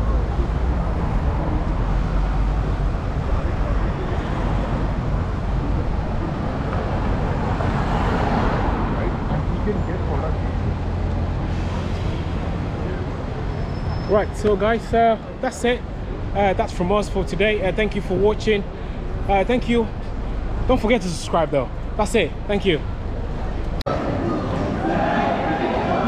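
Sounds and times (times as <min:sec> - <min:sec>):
road traffic rumble: 0:00.0 - 0:26.0
voices of passers-by: 0:00.0 - 0:26.0.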